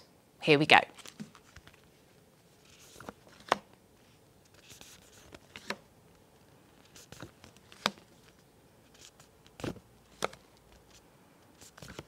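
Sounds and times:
cards tapping and sliding: 2.7 - 3.7, 4.5 - 5.8, 6.8 - 11.0, 11.6 - 12.0.

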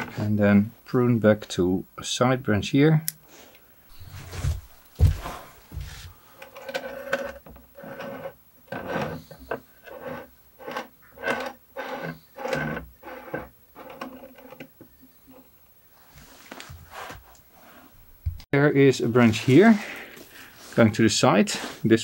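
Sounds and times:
heavy knocks: 4.0 - 6.1
ceramic pot scraping on wooden table: 6.6 - 14.6.

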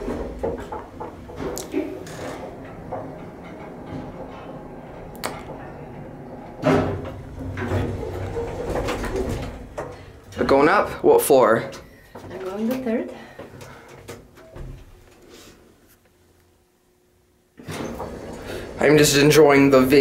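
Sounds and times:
elevator car clattering to a stop: 0.0 - 10.1
elevator machinery humming: 0.0 - 15.2, 17.6 - 20.0.

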